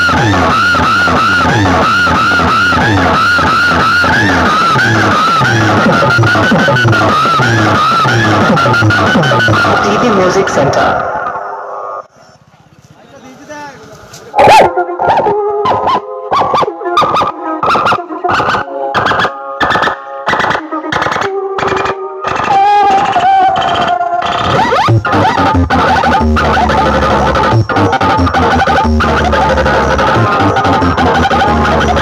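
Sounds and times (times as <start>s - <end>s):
loud music through speakers: 0.0s - 10.6s, 24.4s - 32.0s
choppy beat: 0.0s - 10.7s, 24.5s - 32.0s
deep bass: 0.0s - 11.1s, 24.5s - 32.0s.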